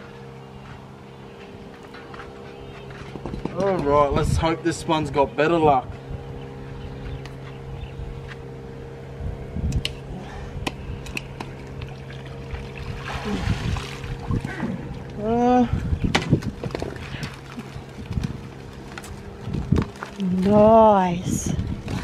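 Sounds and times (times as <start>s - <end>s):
steady low hum: 0.0s - 22.0s
water pouring and splashing: 11.6s - 15.0s.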